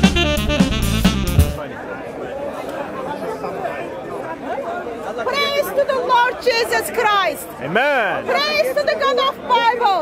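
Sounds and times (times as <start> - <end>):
background chatter: 1.5 - 10.0.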